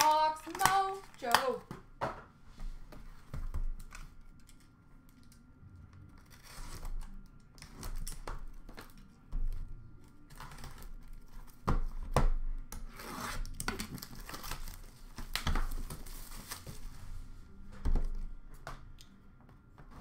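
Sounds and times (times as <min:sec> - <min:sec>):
plastic wrapping tearing and crinkling: 0:12.8 - 0:16.9.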